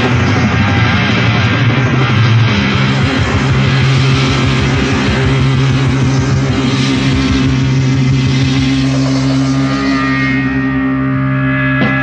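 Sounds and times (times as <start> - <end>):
distorted electric guitar: 0.0 - 12.0.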